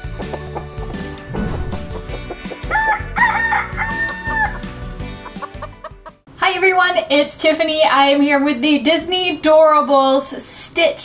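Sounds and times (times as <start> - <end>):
music: 0.0 - 6.8
rooster crowing: 2.6 - 4.8.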